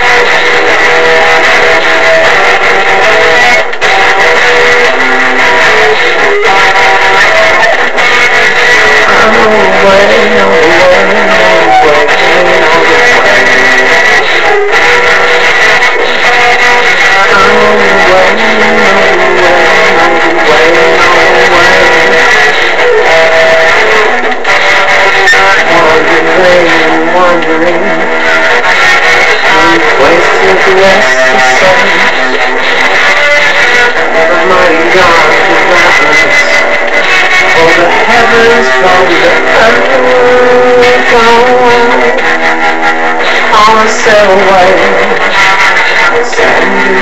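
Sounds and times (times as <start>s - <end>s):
electric guitar playing: 0.0s - 47.0s.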